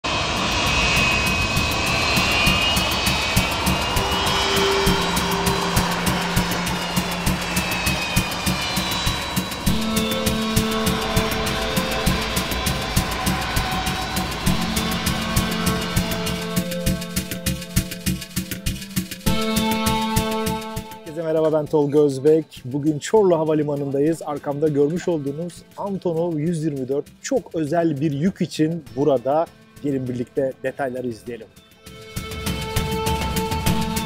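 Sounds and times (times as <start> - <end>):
jet engines whining: 0.0 - 22.1, 31.9 - 34.0
background music with beat: 0.1 - 34.0.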